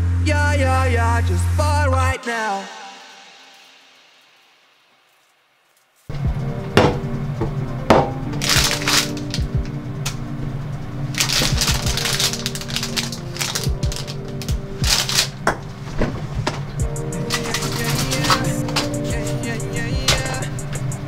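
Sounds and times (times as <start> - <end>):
background music: 0.0 - 5.3, 6.1 - 21.0
plastic bag crinkling: 8.3 - 9.5, 11.1 - 16.3, 17.2 - 19.5.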